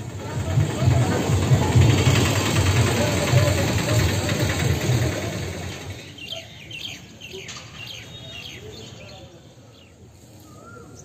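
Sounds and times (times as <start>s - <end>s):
low uneven rumble: 0.0s - 6.1s
small birds chirping: 5.8s - 11.0s.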